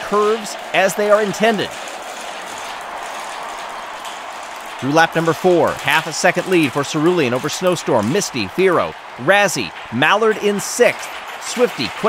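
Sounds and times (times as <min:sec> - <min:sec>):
marbles rolling on a track: 0:00.0 - 0:12.0.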